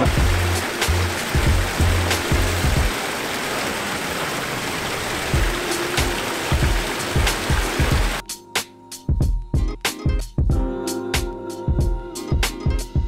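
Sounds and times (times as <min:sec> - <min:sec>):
background music with bass beat: 0:00.0 - 0:02.9, 0:05.4 - 0:13.0
water splashing from fountain: 0:00.0 - 0:08.2.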